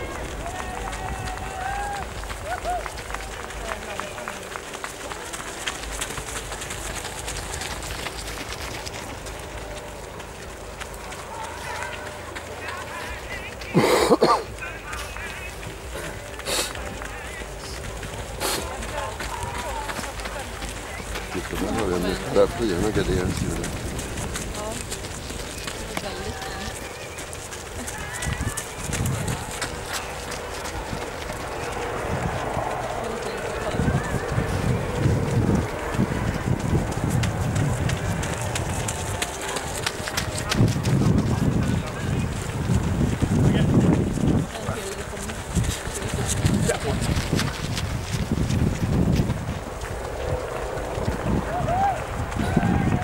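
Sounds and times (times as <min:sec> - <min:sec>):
people talking: 0:00.0 - 0:06.2, 0:11.0 - 0:47.7
indistinct voices: 0:00.0 - 0:53.0
runners' footsteps: 0:00.0 - 0:53.0
wind buffeting microphone: 0:14.5 - 0:53.0.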